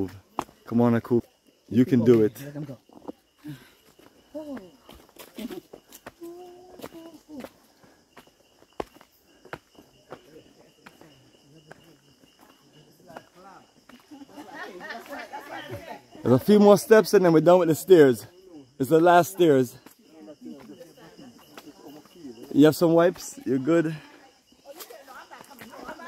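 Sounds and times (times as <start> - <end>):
footsteps on stone steps: 0.0 - 1.0, 2.0 - 15.3, 24.6 - 26.0
faint voices of walkers: 0.0 - 26.0.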